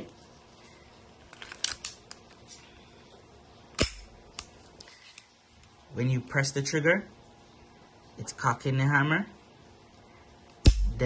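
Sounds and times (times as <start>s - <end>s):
pistol sharp snap: 3.8s - 4.5s, 10.6s - 11.0s.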